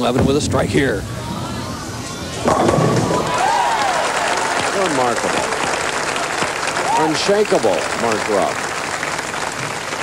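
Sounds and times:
crowd cheering: 1.1 - 10.0
bowling ball rolling: 2.2 - 5.5
bowling pins crashing: 2.4 - 3.9.

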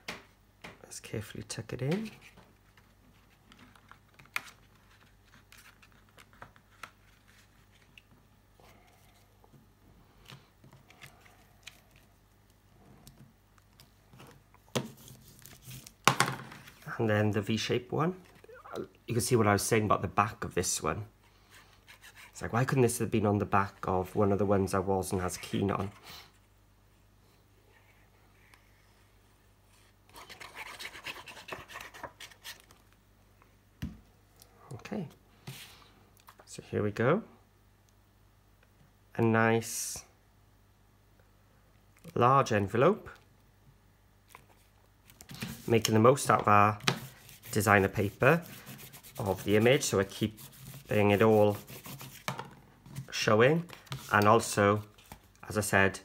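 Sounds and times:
paper and card rustling: 1.9 - 8.1, 13.7 - 16.9, 30.1 - 32.8, 44.3 - 55.4.

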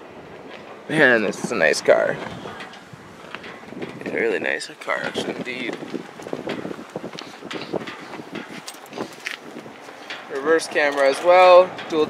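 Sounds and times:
faint outdoor hiss: 0.0 - 12.0
footsteps on pavement: 0.1 - 11.9.

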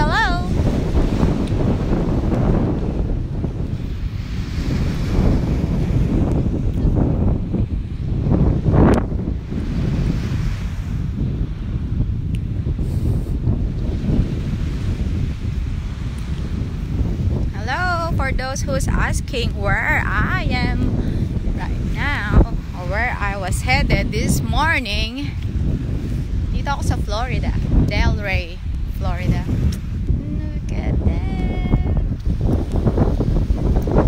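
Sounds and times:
ocean surf breaking: 0.0 - 34.0
wind buffeting microphone: 0.0 - 34.0.

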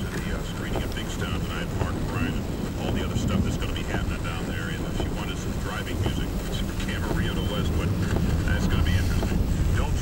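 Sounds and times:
car driving rumble: 0.0 - 10.0.

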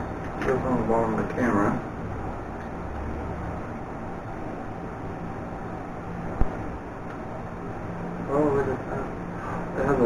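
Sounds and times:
low rushing background noise: 0.0 - 10.0.

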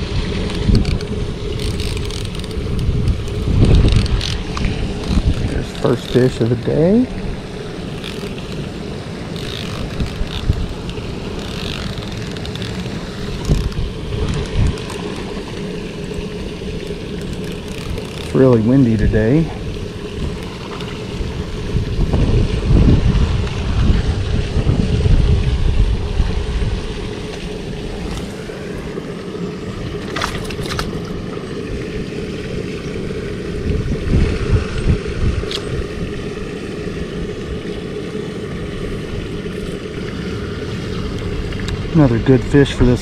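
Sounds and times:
wind buffeting microphone: 0.0 - 43.0.

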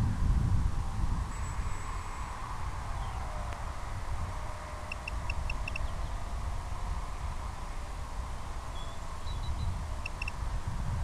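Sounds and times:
wind rumble on microphone: 0.0 - 11.0
high-pitched electronic beeps: 4.9 - 5.9, 9.4 - 10.4.

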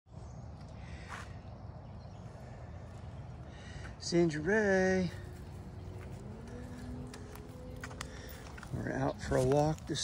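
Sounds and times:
low outdoor rumble: 0.1 - 10.0.

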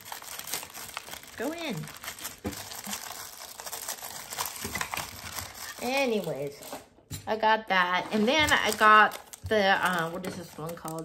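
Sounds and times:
plastic packets crinkling: 0.0 - 7.0, 7.9 - 11.0.

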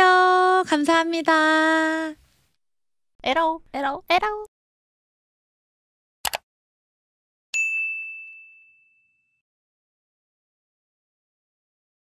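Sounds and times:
high bell-like ding: 7.6 - 9.4.

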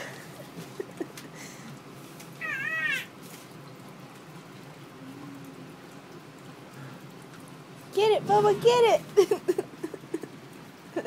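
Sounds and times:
baby squealing: 2.4 - 3.1.

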